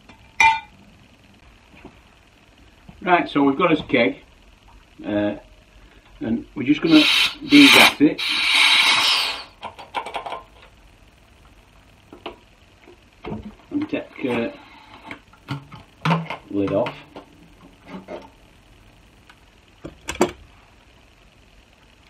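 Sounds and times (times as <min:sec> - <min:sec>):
gas hissing from keg: 0:06.2 - 0:09.7, 0:14.0 - 0:15.2.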